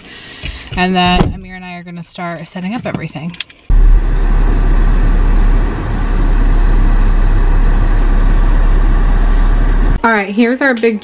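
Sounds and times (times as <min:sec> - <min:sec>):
car interior road rumble: 0:00.5 - 0:01.8, 0:03.7 - 0:10.0.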